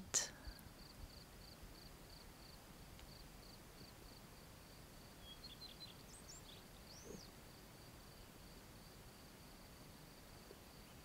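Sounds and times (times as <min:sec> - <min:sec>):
faint high insect trill: 0:00.2 - 0:11.0
faint bird chirps: 0:05.1 - 0:07.4.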